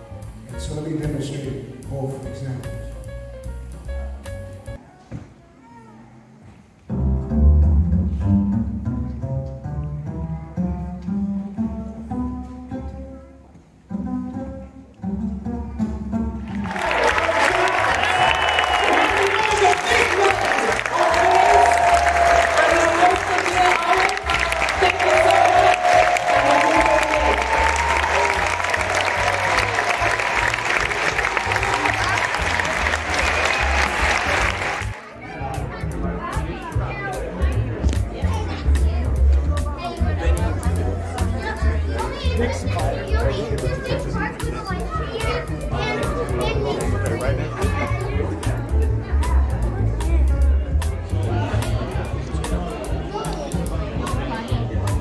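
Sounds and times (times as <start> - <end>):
plucked double bass: 6.9 - 13.2, 13.8 - 16.7, 21.5 - 55.0
audience applause and cheering: 16.5 - 35.2.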